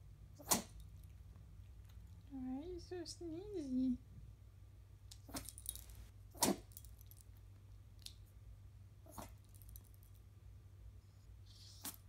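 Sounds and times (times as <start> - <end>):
dog sneezing: 0.4 - 0.8, 6.4 - 6.7, 11.5 - 12.0.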